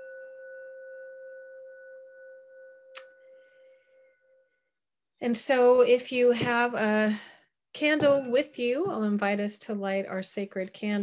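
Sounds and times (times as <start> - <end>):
metal singing bowl ringing: 0.0 - 4.8.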